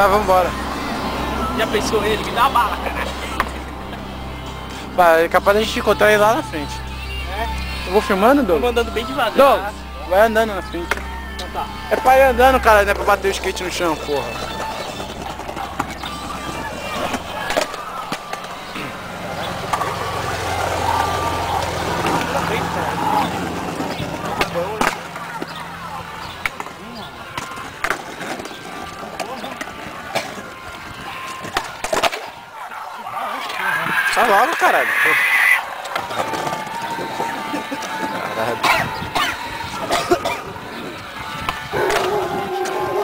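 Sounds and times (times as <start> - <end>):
skateboard wheels rolling on stone: 12.7 - 32.6, 33.3 - 43.0
skateboard clacks: 14.3 - 32.4, 35.8 - 39.9.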